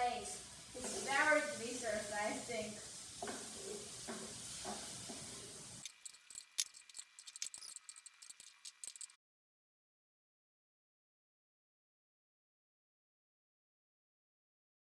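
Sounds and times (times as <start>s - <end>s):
food sizzling in a pan: 0.0s - 9.2s
spatula scraping a pan: 0.8s - 2.1s, 2.8s - 9.1s.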